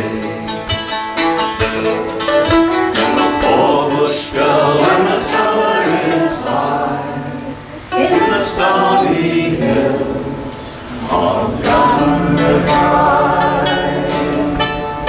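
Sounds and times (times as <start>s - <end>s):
man and woman singing: 0.0s - 1.2s, 3.0s - 15.0s
acoustic guitar: 0.0s - 15.0s
mandolin: 0.0s - 15.0s.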